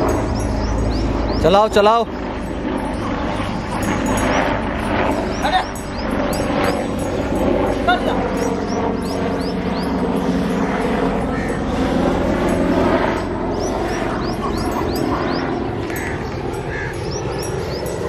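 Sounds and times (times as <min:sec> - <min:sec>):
low hum: 0:00.0 - 0:18.0
small birds chirping: 0:00.0 - 0:18.0.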